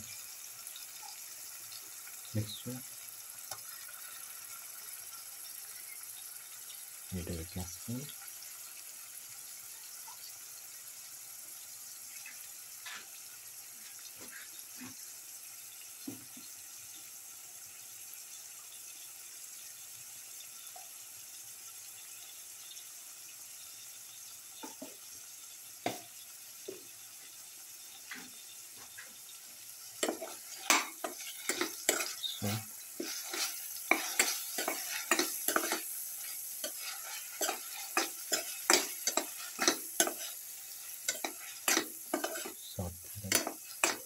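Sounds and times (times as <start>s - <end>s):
food sizzling in hot oil: 0.0s - 44.0s
spatula scraping and clicking on pan: 12.8s - 13.2s, 30.0s - 44.0s.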